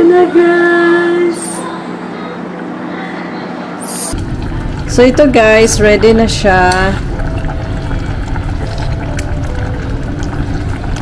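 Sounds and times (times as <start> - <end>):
broth simmering bubbling: 4.1 - 11.0.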